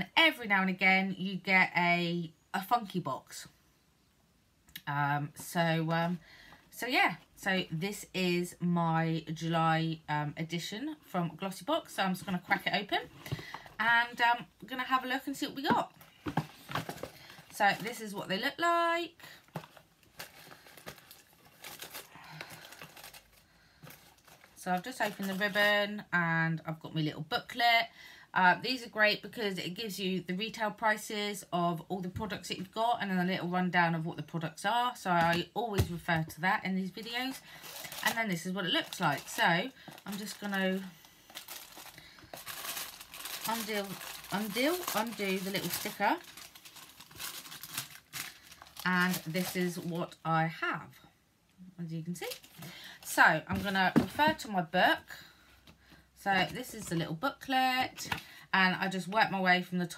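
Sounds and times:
ribbon and packaging rustling: 14.8 - 25.9, 36.9 - 50.2, 52.2 - 54.5.

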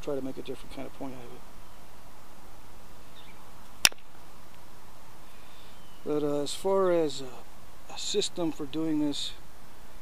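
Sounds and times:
sharp click of flint strike: 3.6 - 4.6.

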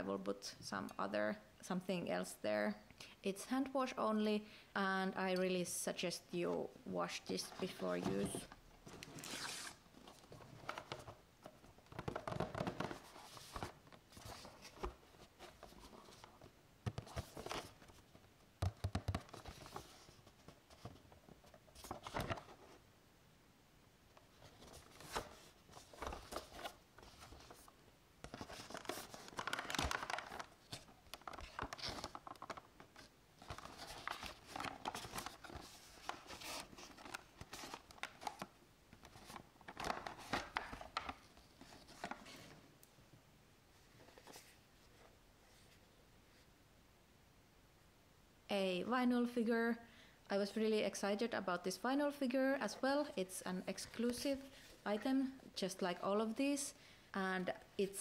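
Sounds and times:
cardboard and plastic packaging rustling: 7.4 - 18.3, 24.2 - 42.6.

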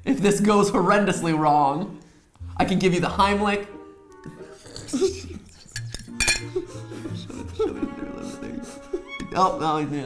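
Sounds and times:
cutlery clinking on a plate: 5.6 - 6.6.

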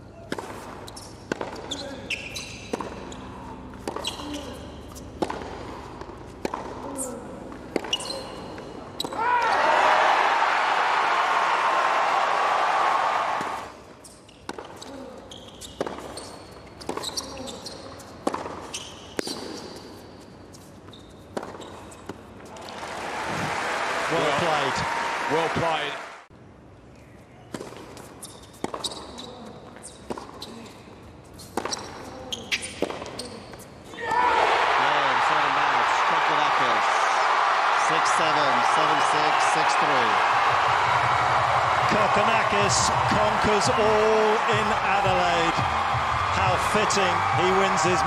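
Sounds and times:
tennis ball bounces: 0.3 - 9.2, 14.5 - 14.9, 15.6 - 19.9, 21.3 - 22.8, 27.5 - 29.1, 30.0 - 30.5, 39.8 - 48.0
crowd cheering and applauding: 9.4 - 13.6, 22.6 - 26.3, 34.4 - 48.0.

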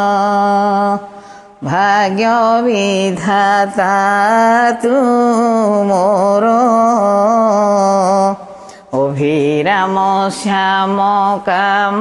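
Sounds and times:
breath: 1.1 - 1.6, 8.4 - 9.0
woman singing unaccompanied: 9.0 - 12.0.

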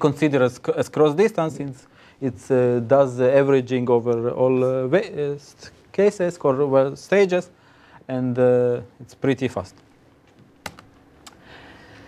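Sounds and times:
keyboard key clicks: 10.6 - 10.9.

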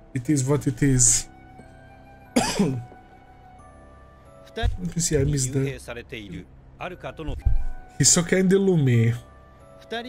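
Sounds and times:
quiet background music: 0.0 - 10.0
man clearing throat: 2.4 - 2.9.

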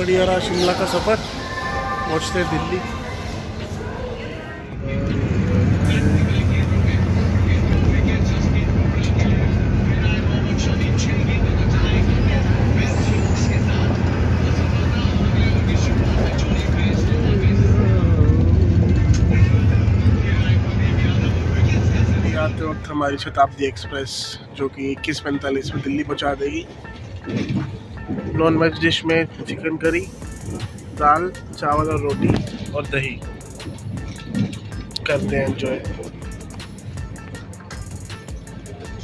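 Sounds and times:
passengers talking: 0.0 - 39.0
train coach rumble and hum: 0.0 - 39.0.

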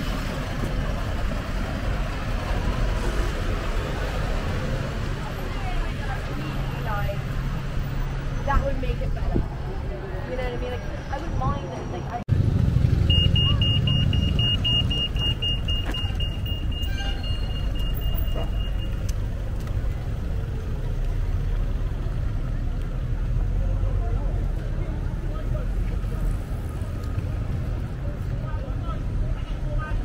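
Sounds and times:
street traffic rumble: 0.0 - 30.0
crossing signal beeping: 13.0 - 19.2.

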